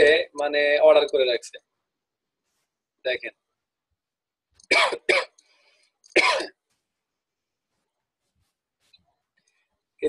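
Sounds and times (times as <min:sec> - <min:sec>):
person coughing: 0:04.7 - 0:05.4, 0:06.2 - 0:06.6.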